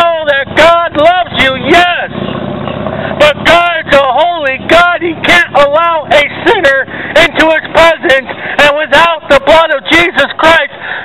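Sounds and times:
man shouting preaching: 0.0s - 2.1s, 3.1s - 11.0s
street traffic noise: 0.0s - 11.0s.

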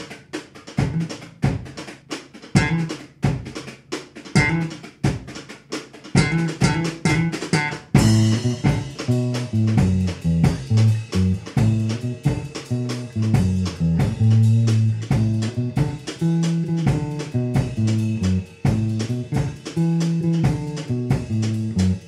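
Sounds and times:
drum kit groove: 0.0s - 22.0s
electric bass notes: 0.8s - 1.2s, 2.6s - 2.9s, 4.4s - 4.8s, 6.2s - 22.0s.

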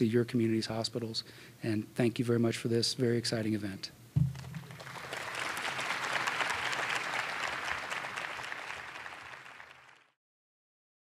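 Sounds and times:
audience applauding: 4.5s - 10.2s.

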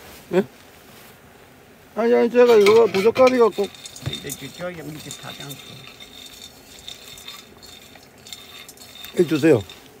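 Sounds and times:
nuts rattling in a frying pan: 2.5s - 10.0s.

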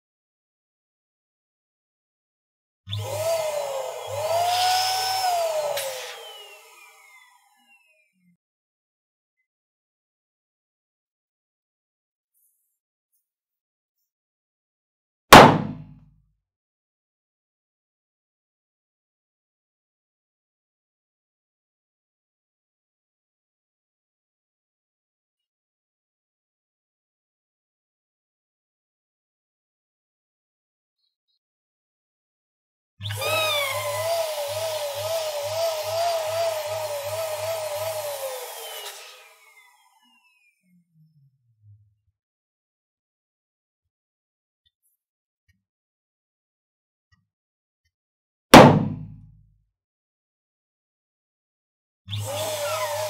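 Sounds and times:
electric balloon pump whining: 2.9s - 8.0s, 33.0s - 40.4s, 52.1s - 53.0s
balloon bursting with a bang: 15.3s - 15.9s, 48.6s - 49.3s.

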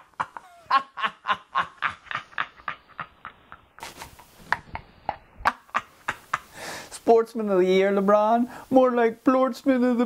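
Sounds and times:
man laughing uncontrollably: 0.0s - 6.6s.

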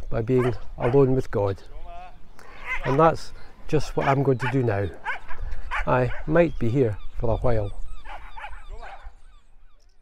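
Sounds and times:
animal yelping calls: 0.4s - 1.0s, 2.5s - 3.1s, 4.0s - 6.3s, 7.7s - 9.7s.

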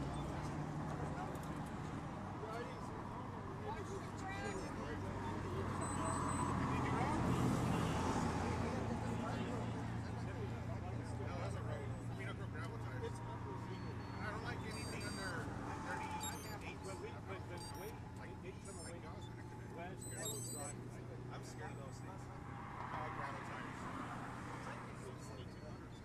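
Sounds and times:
indistinct chatter: 0.0s - 26.0s
road traffic hum: 0.0s - 26.0s
high electronic chirps: 13.8s - 15.4s, 16.0s - 17.0s, 17.6s - 18.0s, 18.6s - 19.4s, 20.0s - 20.8s.

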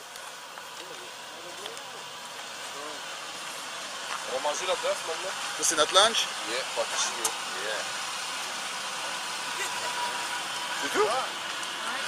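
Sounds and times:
steady hissing noise: 0.0s - 12.0s.

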